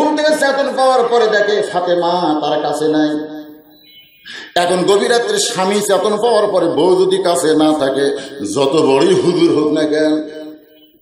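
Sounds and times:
man preaching in chanting delivery: 0.0s - 3.6s, 4.3s - 10.7s.

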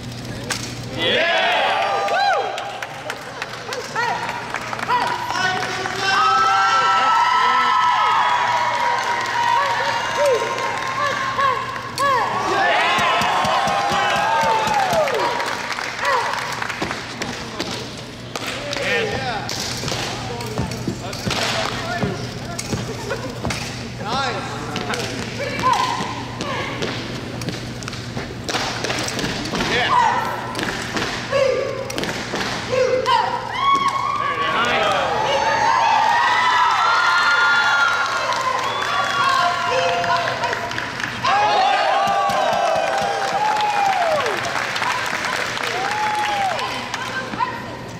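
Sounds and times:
steady low hum: 0.0s - 47.9s.

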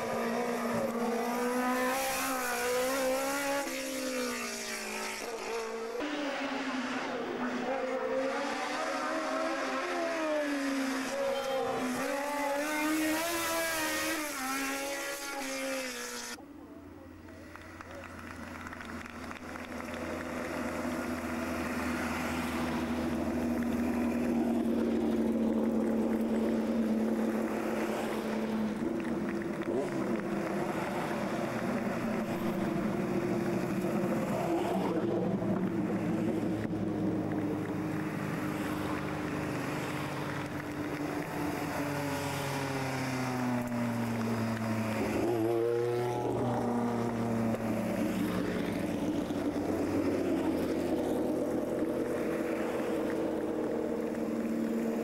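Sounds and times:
race car engine approaching: 0.0s - 16.4s, 17.3s - 55.0s
racing car engine revving: 0.0s - 16.4s.

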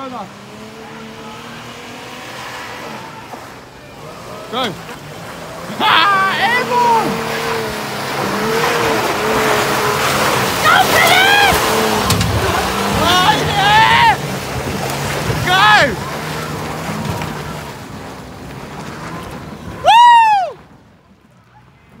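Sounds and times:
vehicle engine climbing: 0.0s - 22.0s
onlookers whooping: 10.6s - 14.2s, 19.7s - 20.7s.

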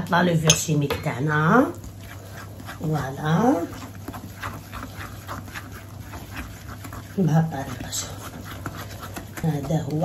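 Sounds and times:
whisk scraping batter in bowl: 0.0s - 10.0s.

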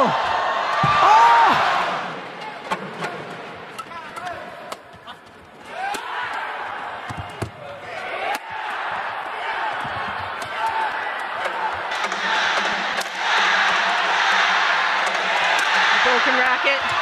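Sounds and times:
crowd noise: 0.0s - 17.0s.

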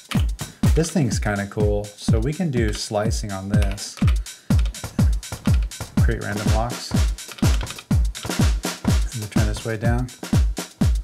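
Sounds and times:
drum machine kick: 0.0s - 11.0s
hi-hat ticks: 0.0s - 11.0s.

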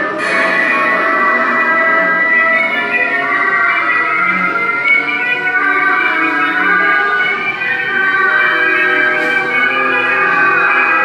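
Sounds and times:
spooky music with bell-like tones: 0.0s - 11.0s.

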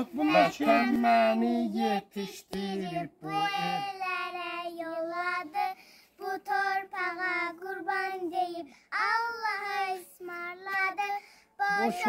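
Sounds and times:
children singing: 0.0s - 4.4s.

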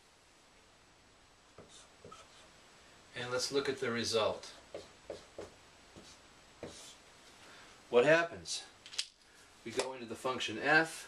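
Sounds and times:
marker writing on whiteboard: 1.5s - 2.5s, 4.6s - 7.0s.

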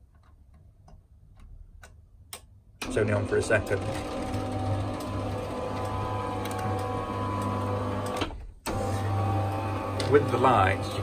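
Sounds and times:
garage door motor running: 2.8s - 11.0s.

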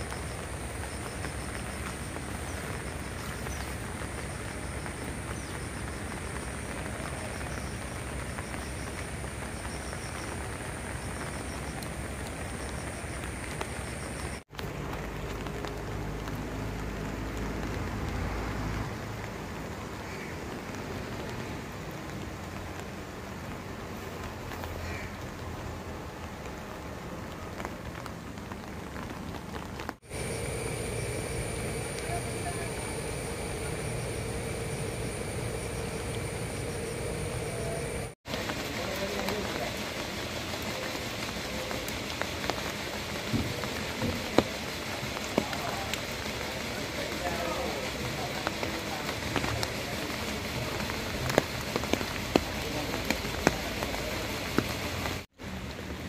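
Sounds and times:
rain drop taps: 0.0s - 18.2s, 38.3s - 55.2s
heavy rain on water and leaves: 0.0s - 56.0s
faint steady hum: 30.1s - 38.2s.

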